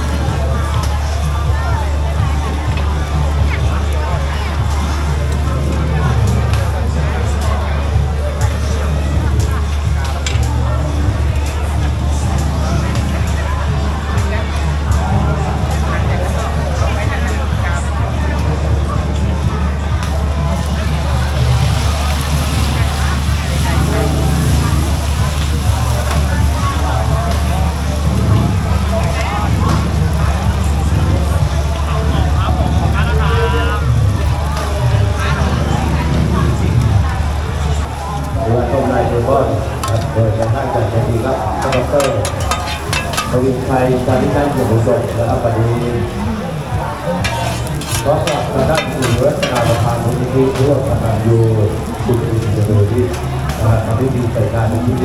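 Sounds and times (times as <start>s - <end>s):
crowd chatter: 0.0s - 55.0s
gas burners roaring: 0.0s - 55.0s
metal spatulas scraping griddle: 41.6s - 44.3s, 47.1s - 50.6s
omelette sizzling in oil: 47.1s - 53.4s.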